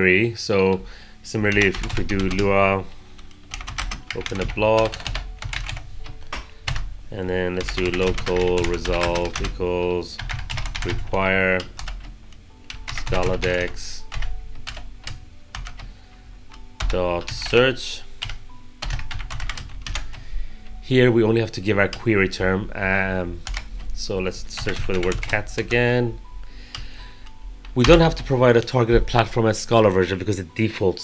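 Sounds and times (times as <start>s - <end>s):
person speaking: 0.0s - 6.5s, 7.1s - 11.9s, 12.6s - 14.3s, 16.6s - 18.2s, 20.6s - 27.1s, 27.7s - 31.0s
computer keyboard typing: 0.6s - 6.9s, 7.5s - 20.2s, 23.4s - 25.8s, 26.7s - 27.0s, 27.7s - 28.4s.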